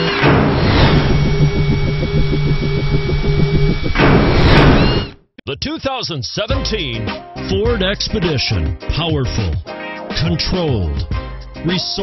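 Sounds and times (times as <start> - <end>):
pulsing low mechanical hum: 0.1 - 5.2.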